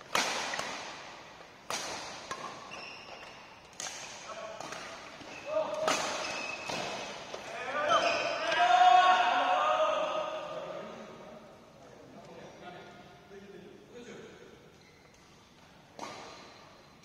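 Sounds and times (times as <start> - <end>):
badminton racket hitting shuttlecock: 0.0 - 7.5
players calling out: 7.4 - 11.1.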